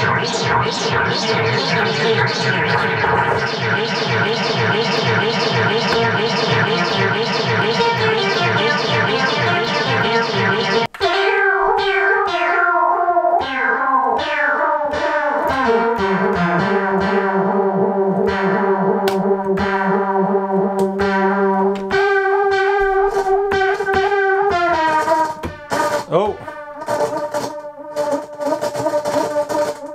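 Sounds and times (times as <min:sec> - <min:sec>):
synthesizer sequence with echoes: 0:00.0 - 0:29.9.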